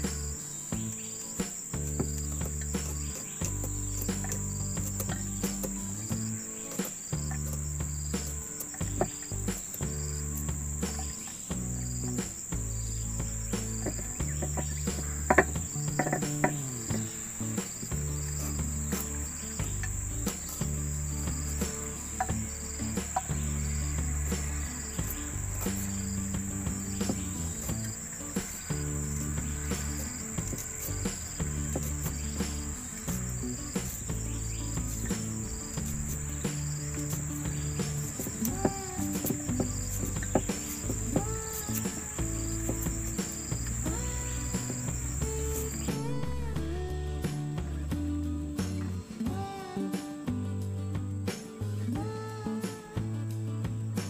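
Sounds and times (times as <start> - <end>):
forest insects droning: 0.0 - 47.8.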